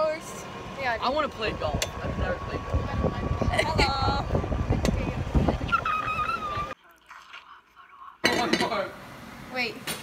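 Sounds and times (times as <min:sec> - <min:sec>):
golf cart rumble and wind: 0:00.0 - 0:06.8.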